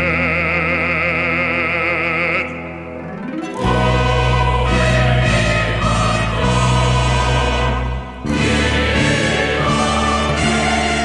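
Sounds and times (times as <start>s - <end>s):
choir and ensemble chord: 0.1s - 11.0s.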